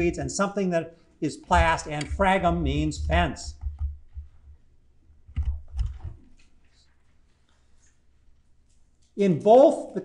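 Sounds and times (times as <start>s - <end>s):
low electrical hum: 0.0s - 10.0s
stylus tapping on tablet: 1.5s - 4.6s, 5.3s - 6.2s.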